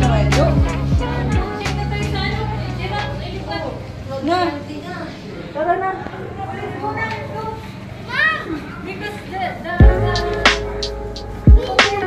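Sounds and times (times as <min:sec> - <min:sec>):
children playing: 0:00.0 - 0:12.0
child shouting: 0:08.1 - 0:08.6.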